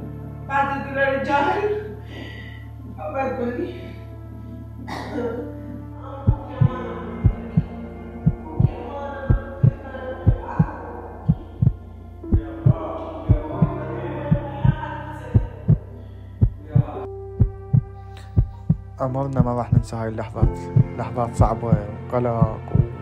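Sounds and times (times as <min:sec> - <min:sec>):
soft background music: 0:00.0 - 0:23.0
low hum: 0:05.6 - 0:23.0
slow heartbeat: 0:05.7 - 0:23.0.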